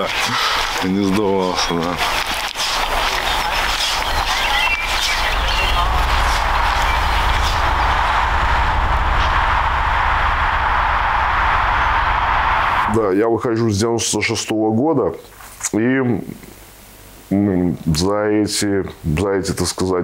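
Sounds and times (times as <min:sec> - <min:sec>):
steady rumble and hiss: 0:04.0 - 0:20.0.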